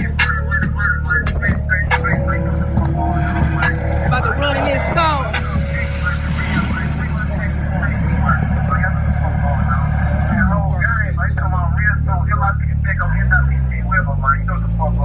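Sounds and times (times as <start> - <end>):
music playing: 0.0 - 12.1
engine idling: 0.0 - 15.0
person talking: 3.4 - 14.5.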